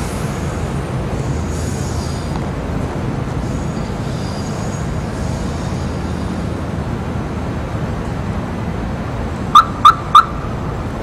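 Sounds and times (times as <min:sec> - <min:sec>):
electric train running: 0:00.0 - 0:07.1.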